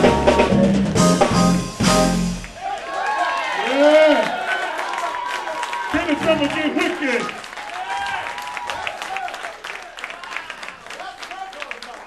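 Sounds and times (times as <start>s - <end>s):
audience applauding: 2.4s - 12.0s.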